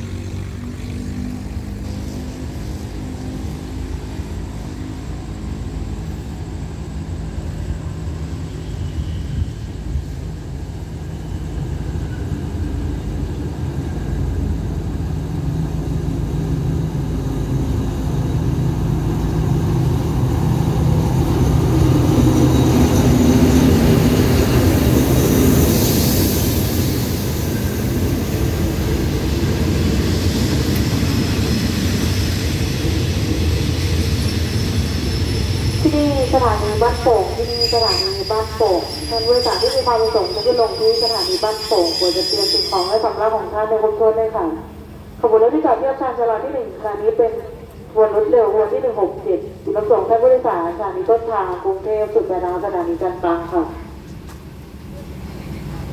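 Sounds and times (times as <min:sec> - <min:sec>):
diesel locomotive engine drone: 0:00.0 - 0:55.9
train coaches rolling on rails: 0:01.6 - 0:43.7
train wheels hissing: 0:07.5 - 0:43.3.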